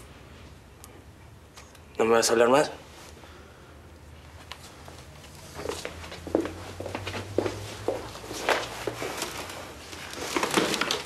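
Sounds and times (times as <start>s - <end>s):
footsteps walking away: 4.2s - 11.0s.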